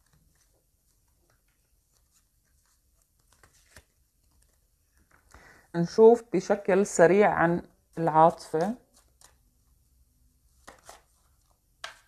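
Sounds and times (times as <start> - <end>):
cards clicking and tapping: 10.6 - 11.1, 11.8 - 12.0.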